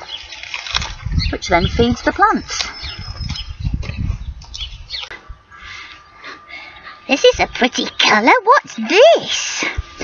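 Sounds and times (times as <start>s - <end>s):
small birds chirping: 0.0s - 9.6s.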